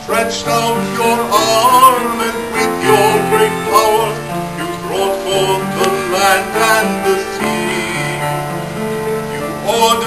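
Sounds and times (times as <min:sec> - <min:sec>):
man singing a slow song: 0:00.0 - 0:08.4, 0:09.4 - 0:10.0
instrumental accompaniment: 0:00.0 - 0:10.0.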